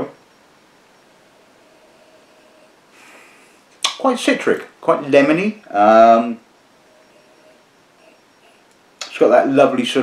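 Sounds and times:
soft sniff: 0:02.9 - 0:03.7.

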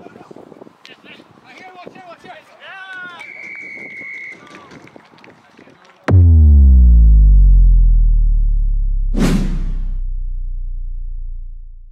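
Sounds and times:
deep falling boom: 0:06.1 - 0:11.9
whoosh: 0:06.1 - 0:11.9.

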